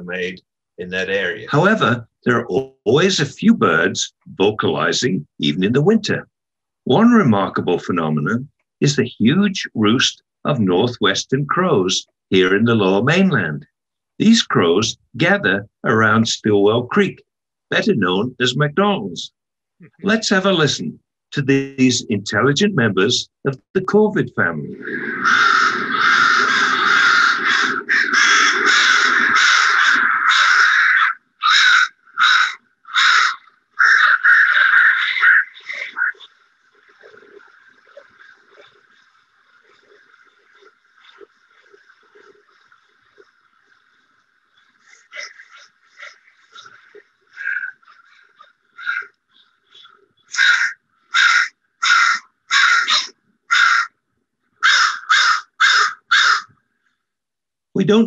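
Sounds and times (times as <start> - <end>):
crows cawing: 24.8 - 36.4, 44.8 - 54.0, 54.6 - 56.6.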